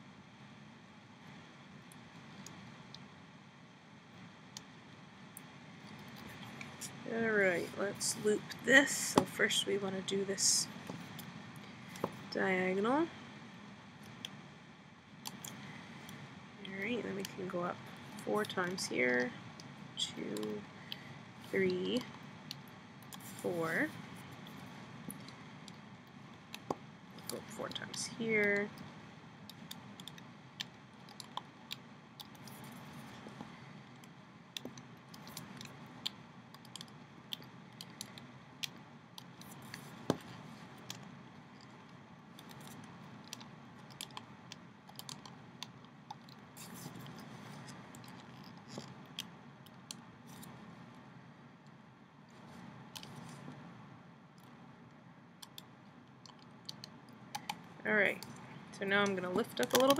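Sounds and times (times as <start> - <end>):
small plastic clicks: 29.5 - 50.6, 55.4 - 58.4, 59.0 - 59.9.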